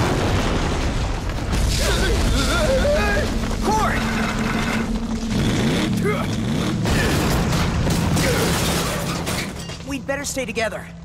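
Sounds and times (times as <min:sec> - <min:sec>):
mechanical whirring and clanking: 0:03.2 - 0:09.8.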